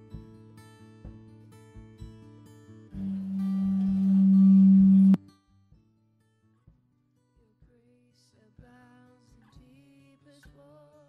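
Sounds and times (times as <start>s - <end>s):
music: 0.0s - 11.0s
loud steady low tone: 3.0s - 5.2s.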